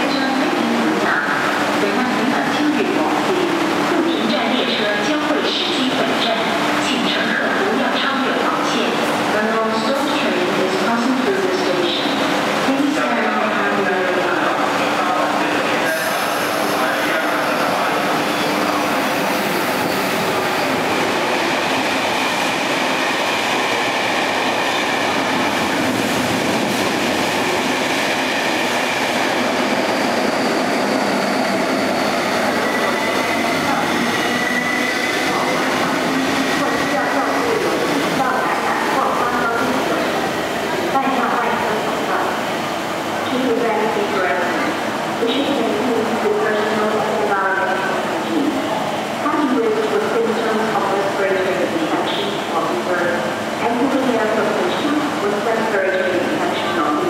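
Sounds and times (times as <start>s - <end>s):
train wheels rumbling on rails: 0.0s - 57.0s.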